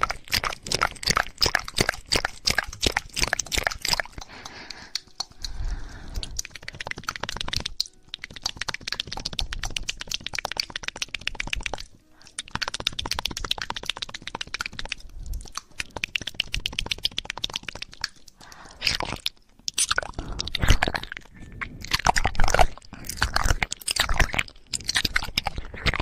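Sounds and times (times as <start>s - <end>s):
small clicks and crackles: 2.8s - 26.0s.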